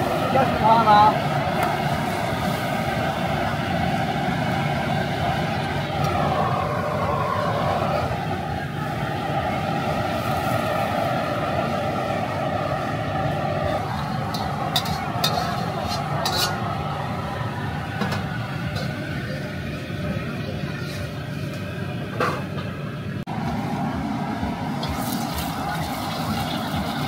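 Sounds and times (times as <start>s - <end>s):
gas burner roaring: 0.0s - 27.0s.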